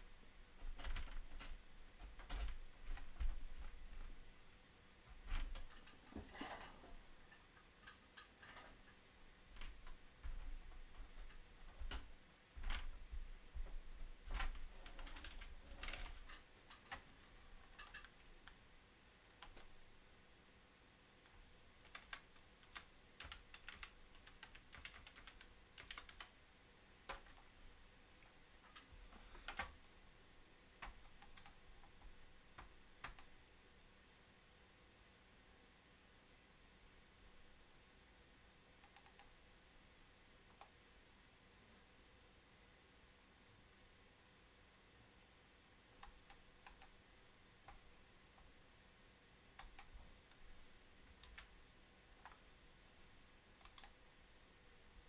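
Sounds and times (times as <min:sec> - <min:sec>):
faint clicks and taps: 0:00.5 - 0:04.2, 0:05.0 - 0:18.6, 0:19.2 - 0:19.8, 0:21.2 - 0:26.4, 0:27.0 - 0:27.6, 0:30.8 - 0:33.3, 0:38.8 - 0:39.4, 0:45.9 - 0:47.0, 0:49.5 - 0:51.6, 0:52.2 - 0:52.5, 0:53.6 - 0:54.0
faint clicks: 0:38.8 - 0:39.4, 0:53.6 - 0:54.0.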